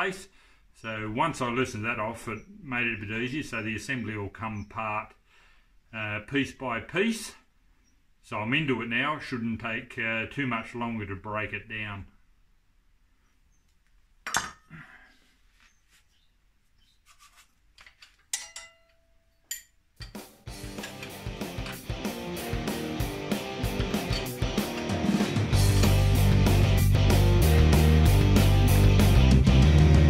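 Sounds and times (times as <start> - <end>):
metallic clinks of tools: 18.3 - 21.9, 23.8 - 24.8
rock music with heavy beat: 20.2 - 30.0.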